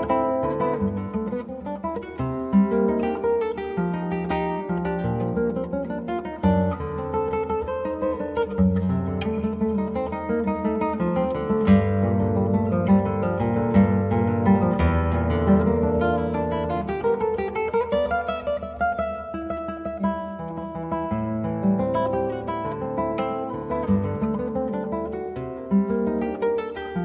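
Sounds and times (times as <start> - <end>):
classical guitar fingerstyle: 0.0 - 27.0.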